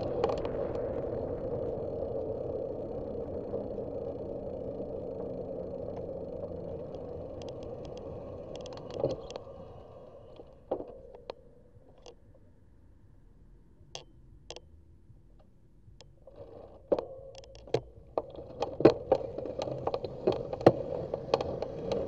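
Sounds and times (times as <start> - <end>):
bicycle tyre noise on asphalt: 0.0 - 12.0, 17.6 - 22.0
light clicks and rattles: 3.4 - 12.5, 15.4 - 22.0.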